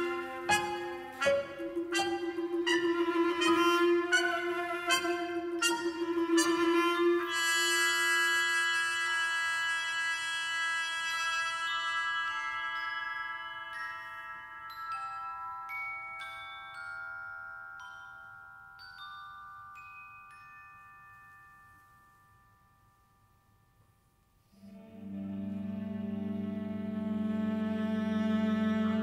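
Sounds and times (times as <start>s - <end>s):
muted trumpet: 0.0s - 12.3s
chamber ensemble sustained chord: 24.6s - 29.0s.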